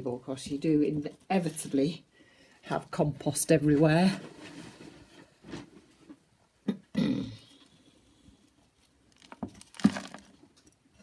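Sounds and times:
scoop scraping in potting compost: 0:09.2 - 0:10.4.

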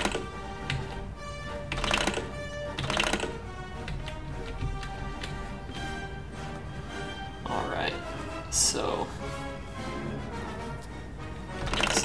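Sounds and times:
music with sustained notes: 0:00.0 - 0:12.0.

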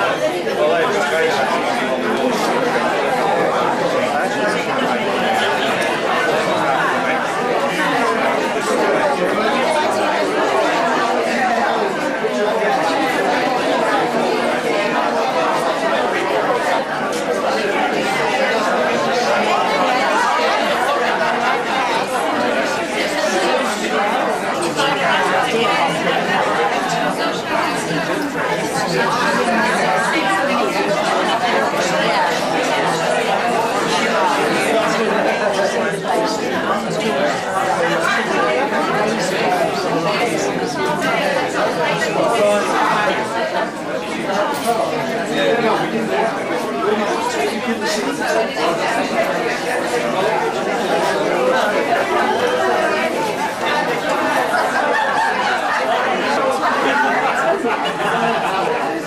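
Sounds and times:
hubbub of overlapping conversations: 0:00.0 - 0:59.0.

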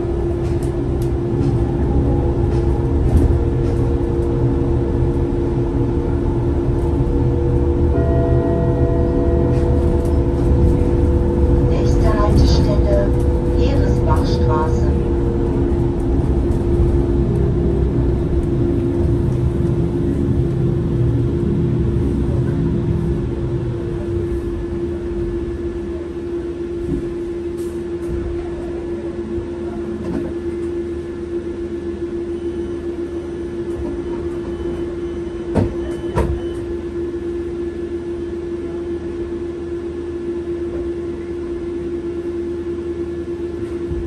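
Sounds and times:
electrical drive hum: 0:00.0 - 0:32.3
bus running rumble: 0:00.0 - 0:44.0.

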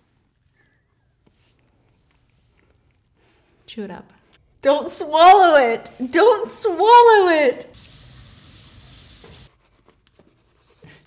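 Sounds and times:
steady hiss: 0:07.7 - 0:09.5.

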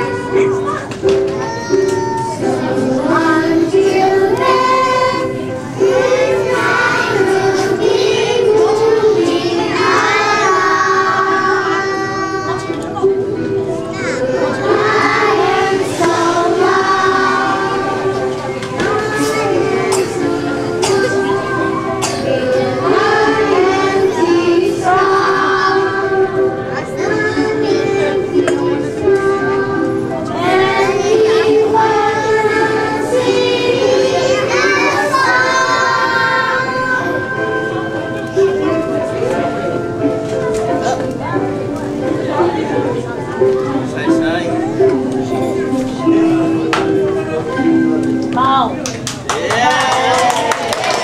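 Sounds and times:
young children singing: 0:00.0 - 0:48.0
backing music: 0:00.0 - 0:51.0.

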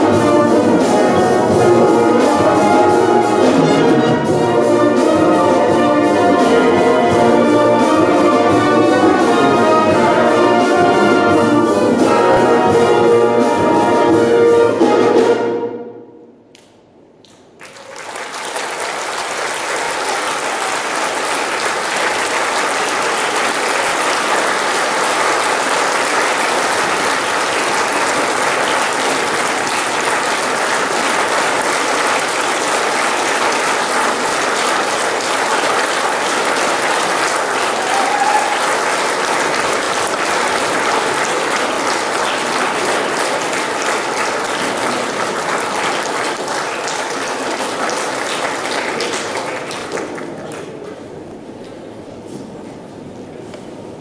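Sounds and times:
audience applauding: 0:17.2 - 0:51.4.

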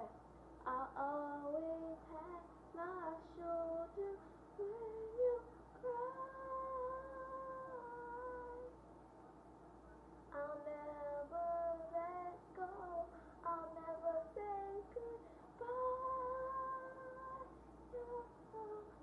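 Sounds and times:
girl singing wordless melody: 0:00.0 - 0:08.8, 0:10.3 - 0:19.0.

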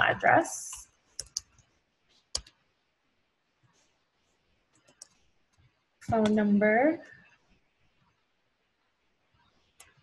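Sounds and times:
keyboard keys clicking: 0:01.2 - 0:01.6, 0:02.3 - 0:02.6.

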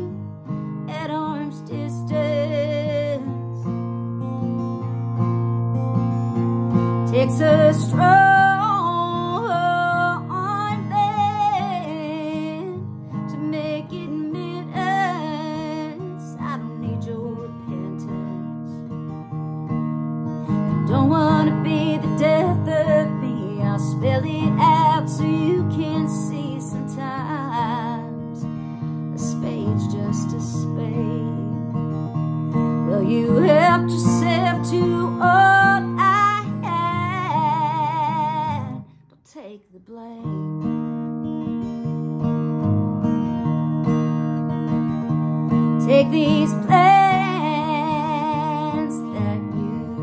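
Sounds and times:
acoustic guitar: 0:00.0 - 0:50.0
woman singing country song: 0:00.0 - 0:50.0.

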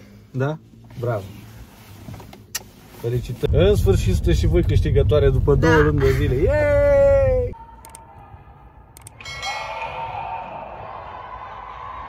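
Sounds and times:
ringing chime: 0:09.2 - 0:10.2.

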